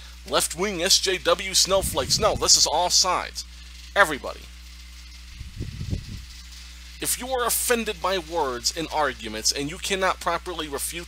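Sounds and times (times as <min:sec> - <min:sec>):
faint hiss: 0:00.0 - 0:11.0
low electrical hum: 0:00.0 - 0:11.0.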